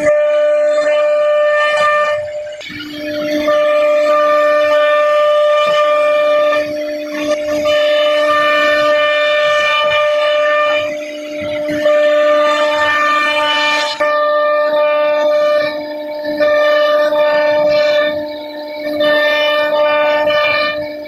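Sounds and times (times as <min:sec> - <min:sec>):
router spindle whining: 0:00.0 - 0:21.0.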